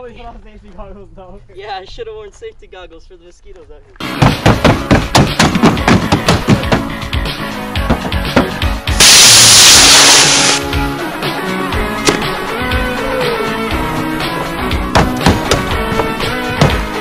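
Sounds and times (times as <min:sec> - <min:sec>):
fast background music: 0:04.0 - 0:17.0
loud rushing hiss: 0:08.9 - 0:10.6.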